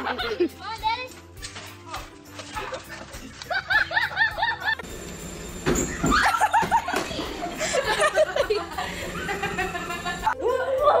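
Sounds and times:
person laughing: 2.5 - 4.8, 6.1 - 10.8.

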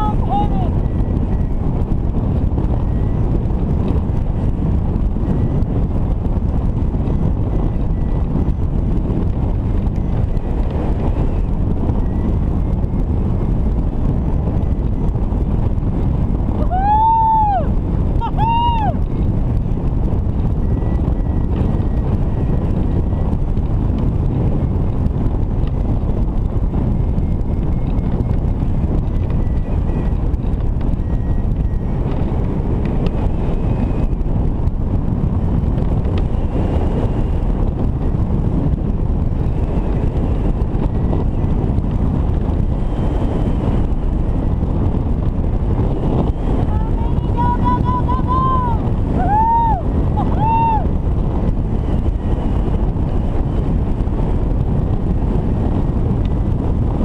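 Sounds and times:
wind rushing over microphone: 0.0 - 57.0.

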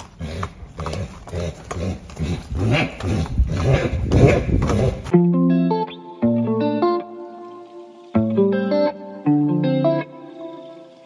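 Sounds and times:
horse whinnying: 0.0 - 5.1
hooves clopping on concrete: 0.0 - 5.3
guitar music: 5.1 - 11.0.

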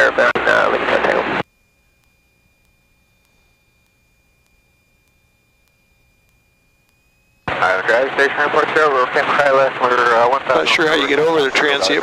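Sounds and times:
faint steady high tone: 1.4 - 9.6.

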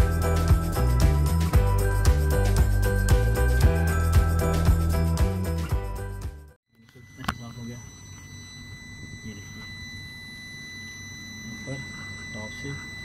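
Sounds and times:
high steady whine: 6.8 - 13.0.

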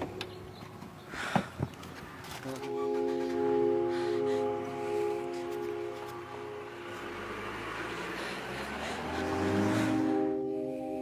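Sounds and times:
car pulling away: 2.0 - 10.8.

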